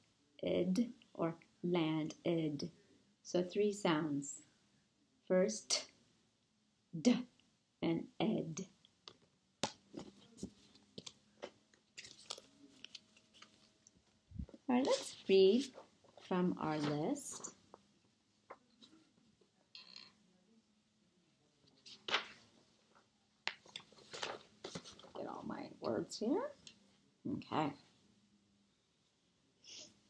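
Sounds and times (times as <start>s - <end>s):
flash cards rustling and clicking: 9.1s - 15.7s, 23.5s - 25.2s
paper rustling: 12.0s - 13.8s, 21.8s - 22.5s, 23.6s - 25.2s.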